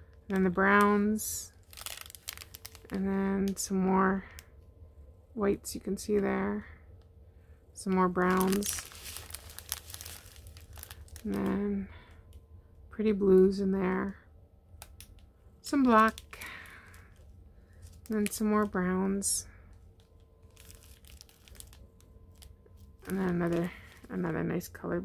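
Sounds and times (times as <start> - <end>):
plastic packaging crinkling: 0.1 - 4.5, 7.8 - 12.4, 14.8 - 24.4.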